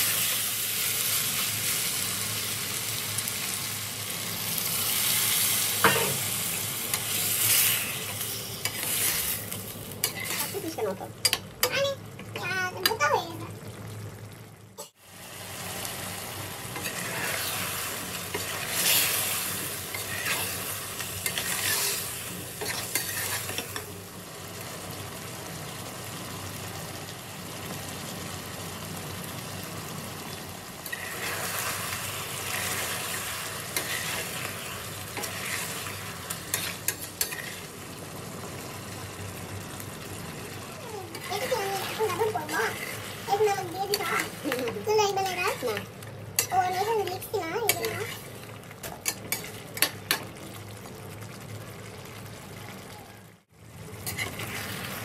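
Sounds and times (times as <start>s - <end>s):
chicken sizzling in a pan: 0.0s - 55.0s
metal spoon scraping a pan: 6.9s - 11.4s, 16.7s - 23.9s, 30.8s - 37.7s, 41.1s - 45.8s, 46.4s - 50.2s, 54.0s - 55.0s.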